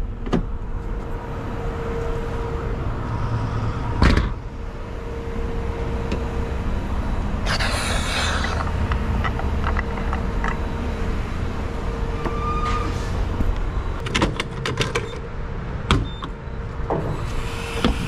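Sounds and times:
low rumble and hum: 0.0s - 14.3s
fuel cap hiss: 7.5s - 9.0s.

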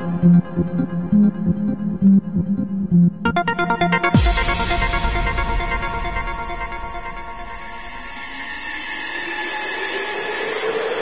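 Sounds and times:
electronic music build-up: 3.0s - 11.0s
rising noise sweep: 4.2s - 11.0s.

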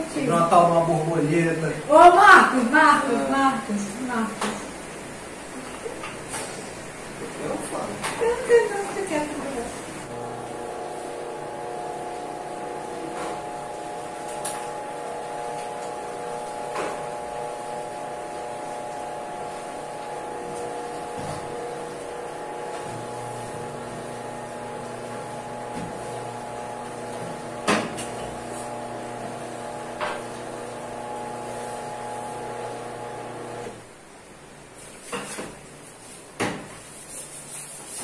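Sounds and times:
motor humming: 8.1s - 33.8s.

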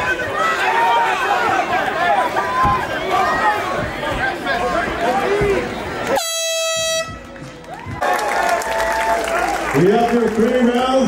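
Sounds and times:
crowd shouting: 0.0s - 6.4s
steady horn blast: 6.1s - 7.3s.

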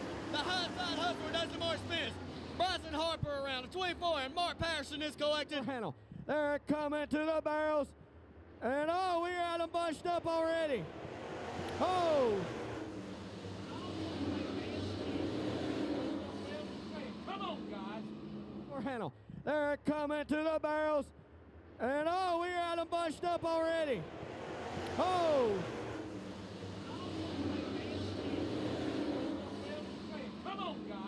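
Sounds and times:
race car engines running: 0.0s - 5.7s, 8.4s - 31.0s.

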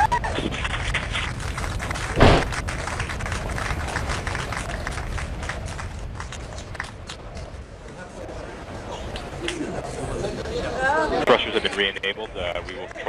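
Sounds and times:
low hum and hiss: 0.0s - 13.0s
loud thump: 2.2s - 2.6s.

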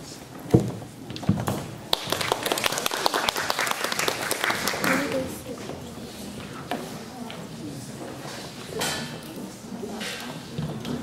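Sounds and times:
murmured voices: 4.4s - 11.0s.

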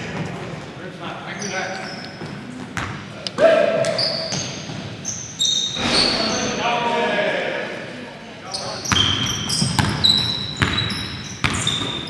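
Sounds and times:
sneakers squeaking on hardwood: 1.3s - 3.1s, 3.8s - 6.6s, 8.5s - 12.0s
players' voices: 5.8s - 8.9s.

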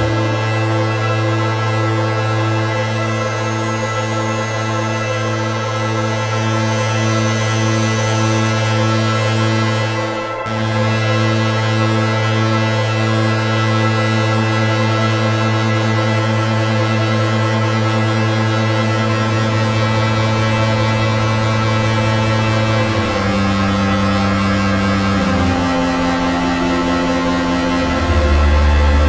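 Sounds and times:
synthesizer bass drone: 2.6s - 13.3s.

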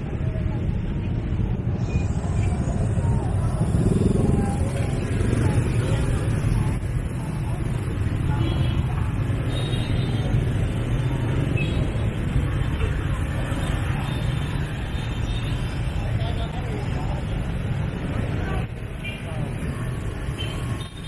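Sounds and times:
scooter engines rumbling: 0.0s - 21.0s.

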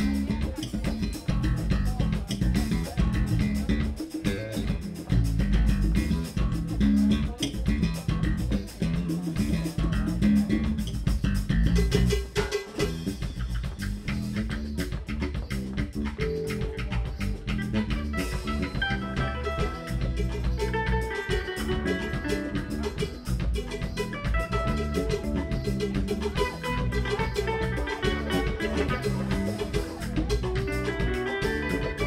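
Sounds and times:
bass guitar: 0.0s - 32.0s
drum kit: 0.0s - 32.0s
hand percussion: 0.0s - 32.0s
kora plucking quick notes: 0.0s - 32.0s.

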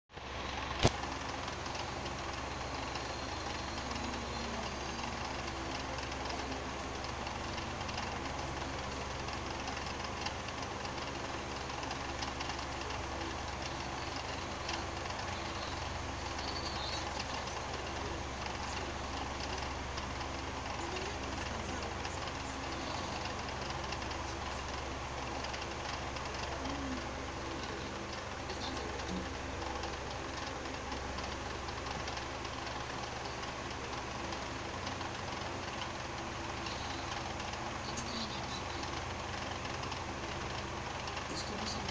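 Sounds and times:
steady rumbling noise: 0.2s - 41.9s.

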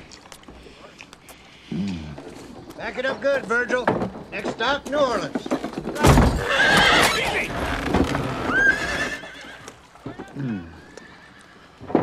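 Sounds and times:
low voiced mm: 1.7s - 2.3s, 10.3s - 10.9s
horse hooves clopping: 2.1s - 12.0s
horse whinny: 6.1s - 11.8s.

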